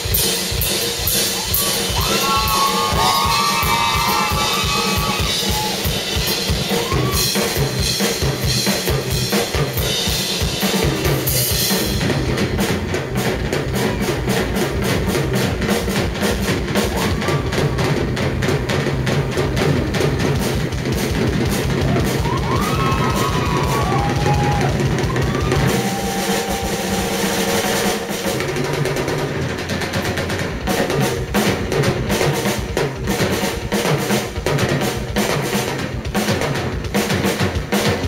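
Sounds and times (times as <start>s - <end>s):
drum solo: 0.0s - 38.0s
whistle-like rising and falling tones: 1.4s - 5.8s.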